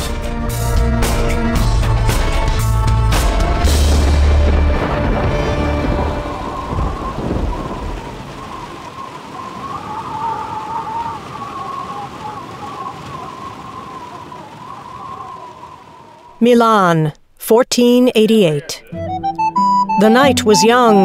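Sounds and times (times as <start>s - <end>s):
steady rain: 0.0s - 21.0s
low rumble of thunder: 0.4s - 16.4s.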